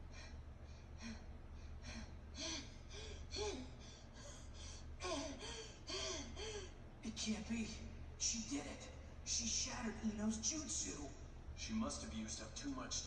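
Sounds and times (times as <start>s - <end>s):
woman panting and gasping: 0.0s - 6.9s
low steady hum: 0.0s - 13.0s.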